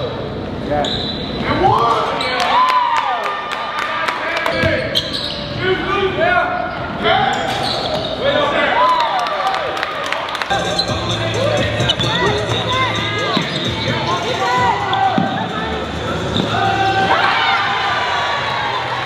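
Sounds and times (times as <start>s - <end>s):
sneakers squeaking on court: 4.5s - 5.6s, 7.3s - 8.3s, 10.5s - 15.6s, 16.3s - 16.6s
players' voices: 10.4s - 19.0s
basketball bouncing: 14.8s - 15.5s.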